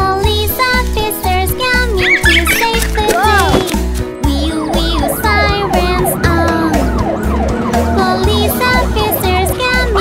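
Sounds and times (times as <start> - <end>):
children's song with bass beat: 0.0 - 10.0
cartoon police siren yelp: 4.5 - 9.4.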